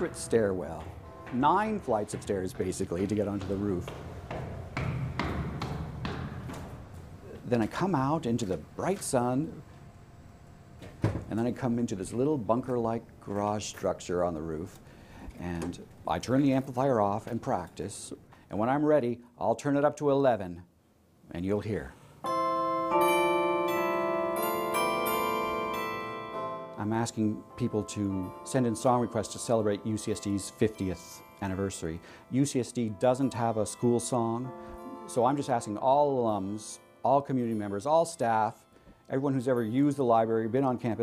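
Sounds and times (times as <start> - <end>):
carillon bell notes: 0.0 - 4.0, 22.2 - 40.6
footsteps on steel stairs: 0.0 - 9.2.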